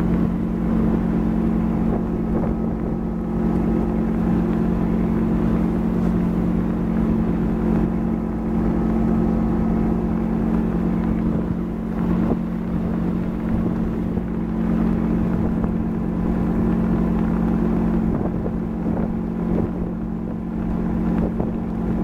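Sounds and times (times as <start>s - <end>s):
boat engine drone: 0.0s - 22.0s
rushing water: 0.0s - 22.0s
wind: 0.0s - 22.0s.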